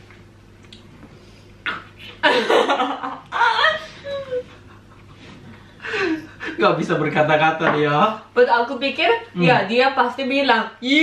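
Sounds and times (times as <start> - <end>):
people laughing: 2.2 - 6.6.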